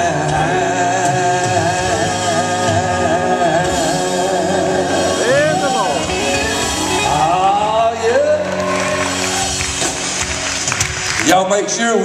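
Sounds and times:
gospel band sustained chord: 0:00.0 - 0:12.0.

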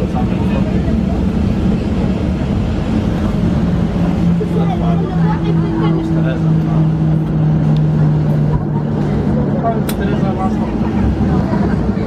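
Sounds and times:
airplane cabin engine hum: 0:00.0 - 0:12.0
passenger voices: 0:00.0 - 0:12.0.

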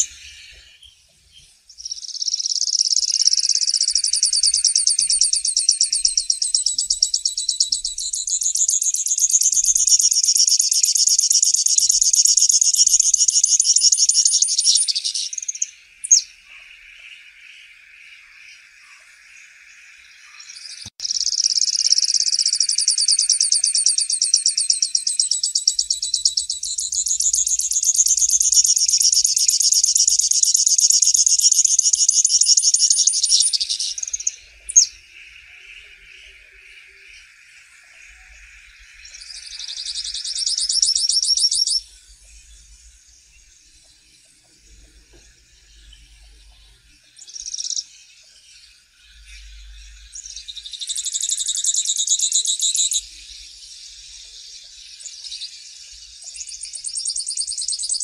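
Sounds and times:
finch singing buzzy trill: 0:01.8 - 0:16.3, 0:20.4 - 0:35.0, 0:38.2 - 0:42.6
faint background hiss: 0:41.0 - 0:51.2.

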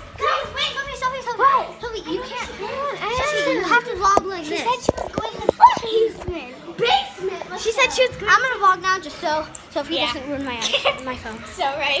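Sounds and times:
children talking and exclaiming: 0:00.0 - 0:12.0.

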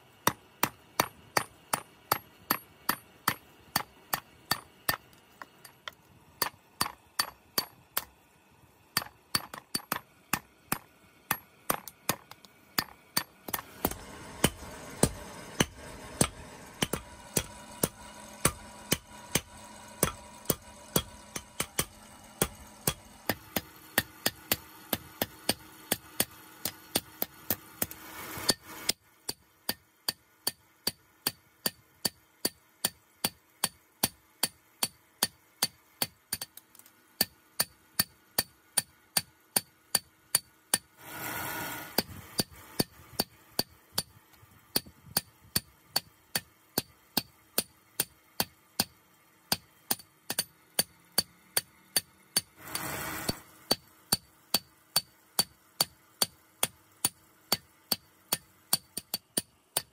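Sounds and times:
hammer striking metal on anvil: 0:00.2 - 0:08.1, 0:09.0 - 0:28.6, 0:49.5 - 0:56.4
steady hum: 0:00.2 - 0:25.2.

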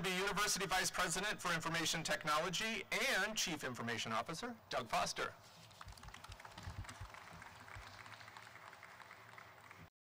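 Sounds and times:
faint light applause: 0:05.8 - 0:09.9.

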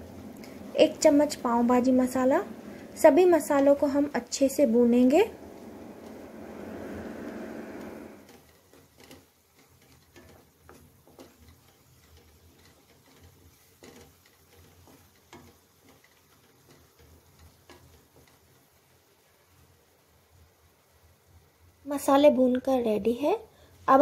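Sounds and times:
spatula scraping a pan: 0:08.2 - 0:18.4.

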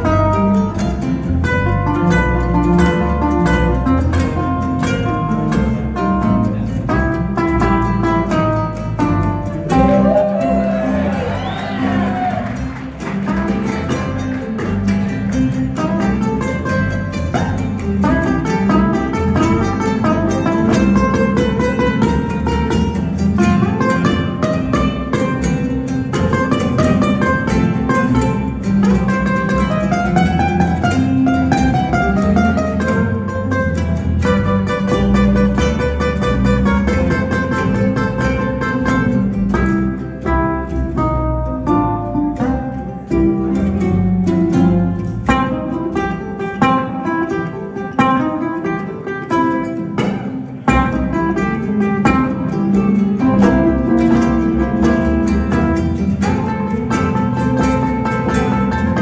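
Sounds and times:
acoustic bass walking line: 0:00.0 - 0:59.0
ukuleles plucking melody: 0:00.0 - 0:59.0.

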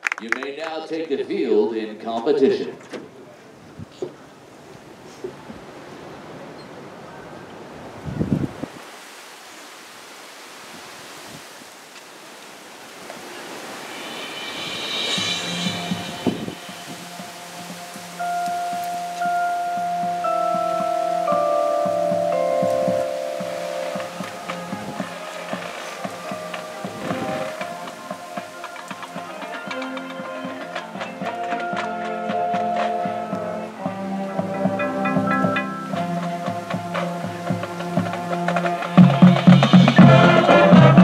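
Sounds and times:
wind instruments holding long notes: 0:12.7 - 0:41.0
high chime-like shimmer: 0:13.6 - 0:24.7.

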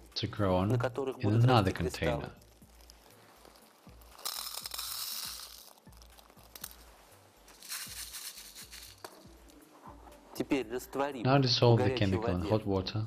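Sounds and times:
pebbles poured into plastic container: 0:01.7 - 0:09.6.

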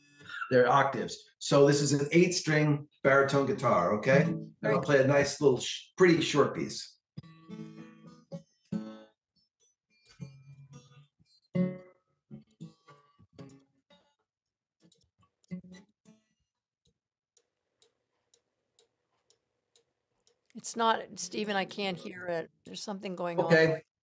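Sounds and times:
acoustic guitar playing: 0:03.3 - 0:05.3, 0:07.2 - 0:09.2, 0:09.9 - 0:14.2, 0:14.8 - 0:16.2, 0:20.6 - 0:23.8.

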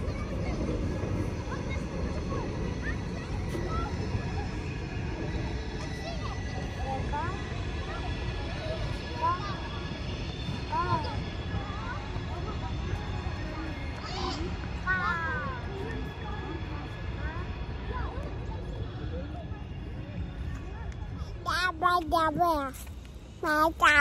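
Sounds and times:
distant voices outdoors: 0:00.0 - 0:24.0
steady low rumble: 0:00.0 - 0:24.0.

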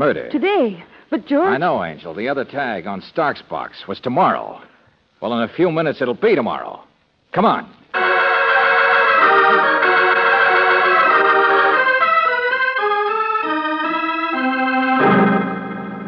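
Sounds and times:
organ chords: 0:07.9 - 0:16.0.

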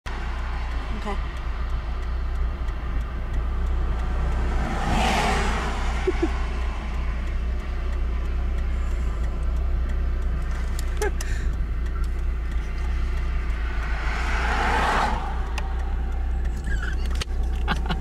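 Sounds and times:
oncoming vehicle passing: 0:00.1 - 0:10.9, 0:11.5 - 0:18.0
road and engine rumble in car: 0:00.1 - 0:18.0.

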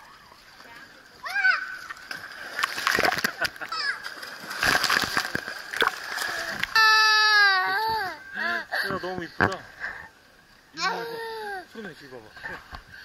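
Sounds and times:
pool water splashing: 0:00.0 - 0:12.9
child crying out: 0:06.8 - 0:08.3.

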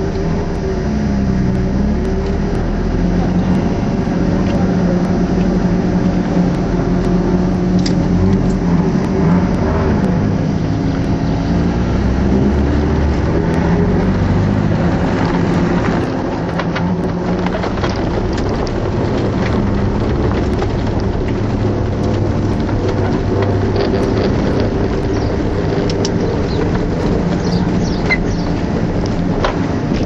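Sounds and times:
car engine heard from inside: 0:00.0 - 0:30.0.

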